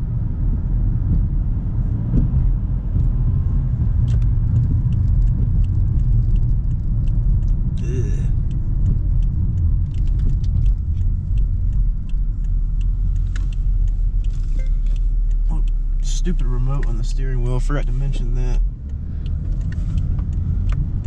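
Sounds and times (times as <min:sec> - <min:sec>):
car engine and road noise: 0:00.0 - 0:21.0
faint light ticks: 0:04.0 - 0:21.0.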